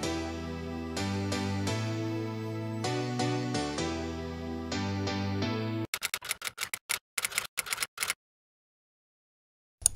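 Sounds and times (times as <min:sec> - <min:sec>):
typewriter key clacks: 0:06.0 - 0:08.2.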